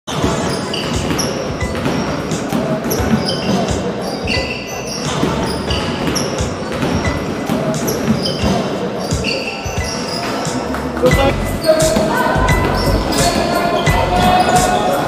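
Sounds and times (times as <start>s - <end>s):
basketball bouncing: 0.1s - 14.8s
sneakers squeaking: 0.1s - 15.0s.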